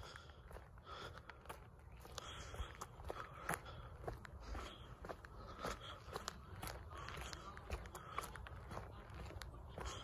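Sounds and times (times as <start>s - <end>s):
footsteps on gritty asphalt: 0.0s - 10.0s
grit crunching underfoot: 0.0s - 10.0s.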